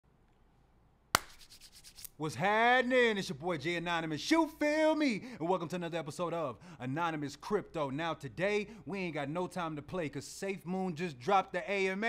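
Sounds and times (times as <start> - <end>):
scratchy rubbing and small clicks: 1.2 - 2.2.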